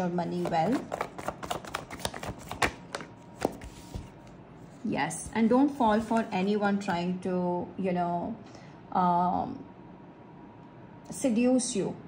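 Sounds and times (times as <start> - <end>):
cards being shuffled: 0.3 - 4.4, 5.2 - 6.4.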